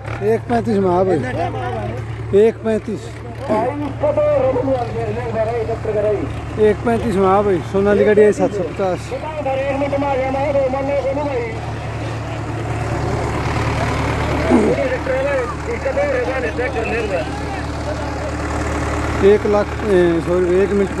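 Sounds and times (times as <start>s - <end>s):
tractor diesel engine running: 0.0s - 21.0s
people calling out: 8.4s - 19.2s.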